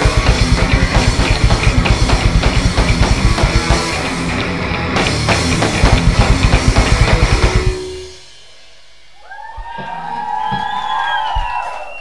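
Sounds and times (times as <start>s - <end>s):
rock band playing: 0.0s - 10.7s
electric guitar feedback: 0.0s - 12.0s.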